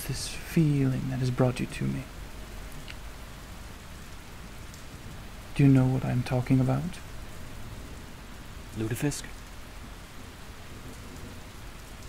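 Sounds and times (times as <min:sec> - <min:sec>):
steady rain hiss: 0:00.0 - 0:12.0.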